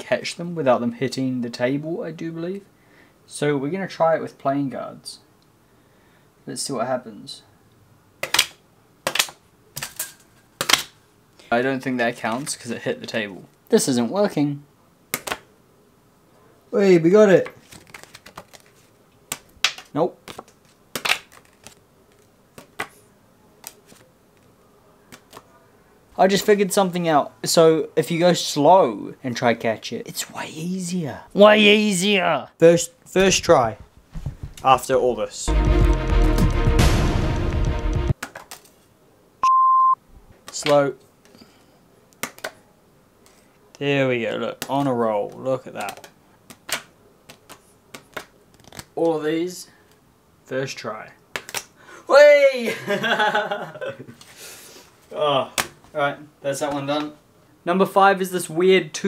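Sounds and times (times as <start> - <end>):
playing cards slapping onto table: 8.2 - 10.0, 10.6 - 10.9, 15.1 - 15.5, 19.3 - 21.8, 42.2 - 42.6, 45.8 - 48.9.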